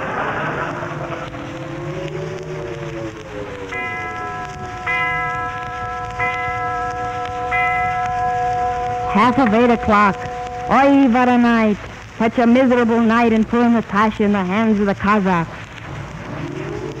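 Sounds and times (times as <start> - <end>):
chime struck: 3.7 - 11.5.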